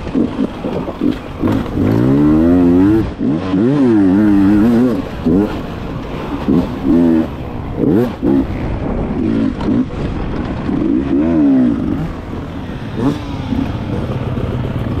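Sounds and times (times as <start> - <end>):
motorcycle engine revving: 0.0 - 15.0.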